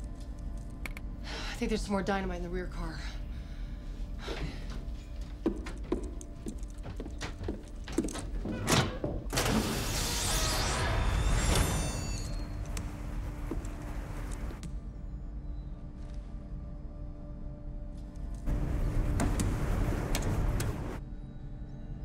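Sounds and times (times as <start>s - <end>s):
high squeals: 9.6s - 13.0s
train rumble and hum: 18.3s - 21.0s.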